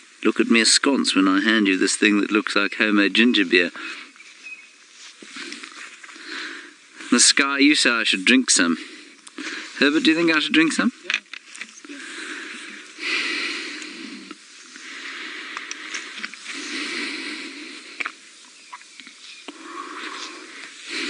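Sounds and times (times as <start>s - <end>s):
man breathing: 3.7s - 4.2s, 5.2s - 7.2s, 8.7s - 9.9s, 11.8s - 18.4s, 19.4s - 21.0s.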